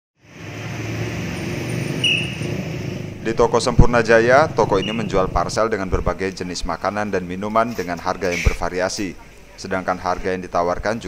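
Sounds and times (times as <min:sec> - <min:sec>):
road traffic hum: 0:00.2 - 0:10.5.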